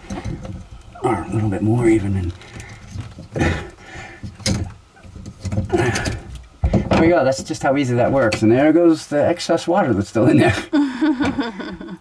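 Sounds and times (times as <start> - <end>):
rubbing and handling noise: 0.0 - 8.8.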